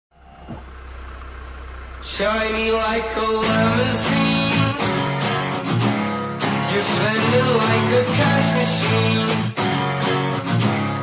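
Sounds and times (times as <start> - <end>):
low steady hum: 0.1 - 5.0.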